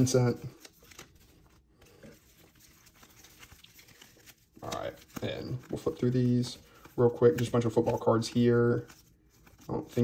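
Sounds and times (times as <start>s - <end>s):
trading cards shuffling: 0.0s - 10.0s.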